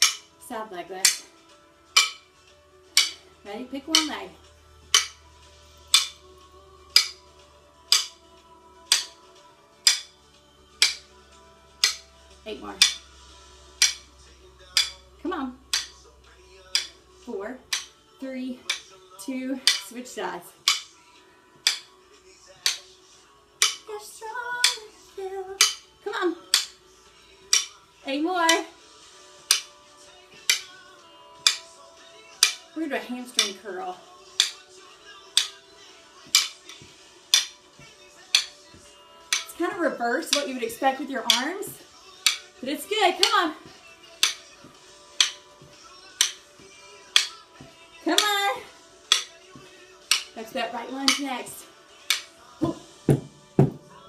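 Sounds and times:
drumsticks clacking together: 0.0 - 0.3, 1.0 - 1.3, 1.9 - 2.3, 2.9 - 3.3, 3.9 - 4.2, 4.9 - 5.2, 5.9 - 6.2, 6.9 - 7.2, 7.9 - 8.2, 8.9 - 9.2, 9.8 - 10.2, 10.8 - 11.1, 11.8 - 12.1, 12.8 - 13.1, 13.8 - 15.0, 15.7 - 16.0, 16.7 - 17.0, 17.7 - 18.0, 18.6 - 18.9, 19.6 - 21.0, 21.6 - 22.0, 22.6 - 23.0, 23.6 - 23.9, 24.6 - 24.9, 25.6 - 26.8, 27.5 - 27.8, 28.4 - 28.7, 29.4 - 30.8, 31.4 - 31.8, 32.4 - 32.7, 33.4 - 33.6, 34.3 - 53.8
faint background music: 0.0 - 54.0
faint song: 0.0 - 54.0.

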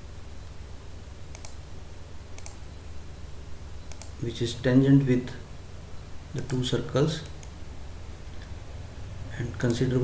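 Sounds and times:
steady low hum: 0.0 - 10.0
computer mouse clicks: 1.3 - 1.6, 2.3 - 2.6, 3.9 - 4.2, 6.4 - 7.6.

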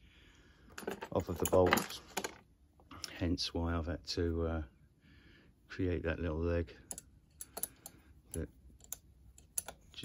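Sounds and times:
light metallic clicks and taps: 6.8 - 10.0.

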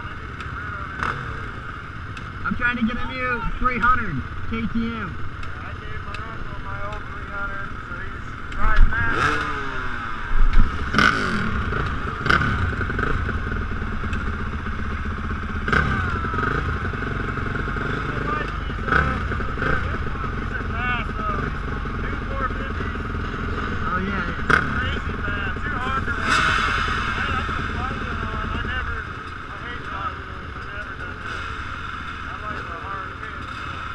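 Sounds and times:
motocross engines idling and revving: 0.0 - 33.9.

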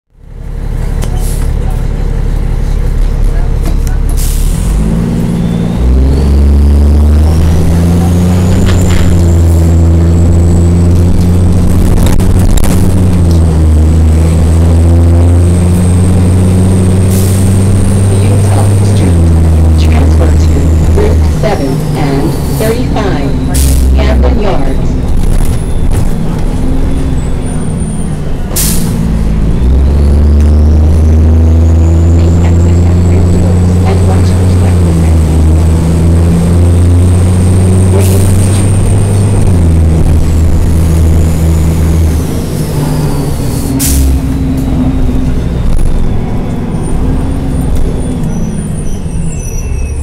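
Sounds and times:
bus diesel engine accelerating: 0.1 - 50.0
high transmission whine: 0.1 - 50.0.

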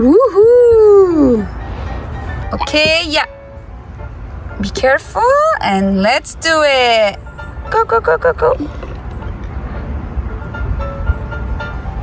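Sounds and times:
faint background music: 0.0 - 12.0
wind buffeting microphone: 0.0 - 12.0.

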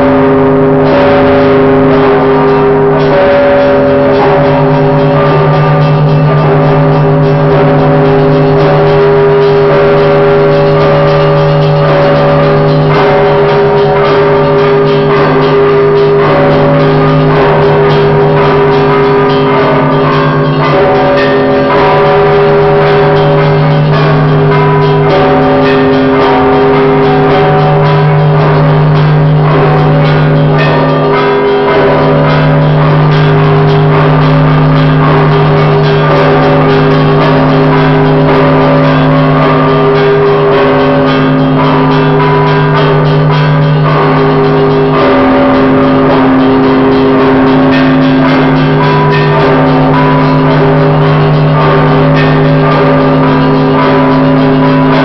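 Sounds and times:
large bells ringing: 0.0 - 55.0.

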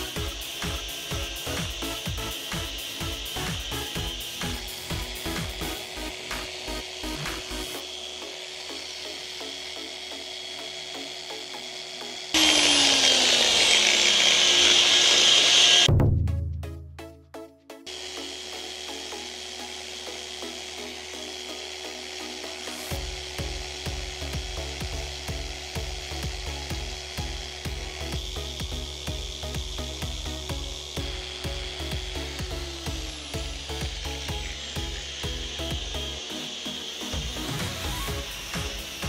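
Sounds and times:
car polisher motor whine: 0.0 - 15.9, 17.8 - 39.0
polishing pad hissing on paint: 0.0 - 15.9, 17.9 - 39.0
background music with steady beat: 0.0 - 39.0.

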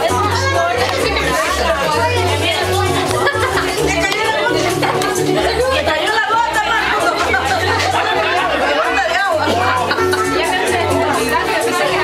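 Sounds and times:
crowd talking: 0.0 - 12.0
dance music with pulsing bass: 0.0 - 12.0.

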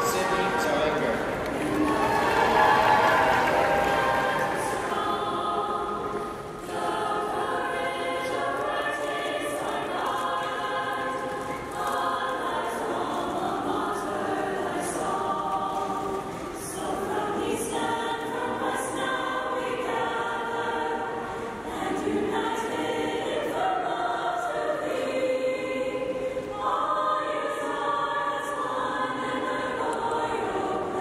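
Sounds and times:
choir singing sustained chords: 0.0 - 31.0.

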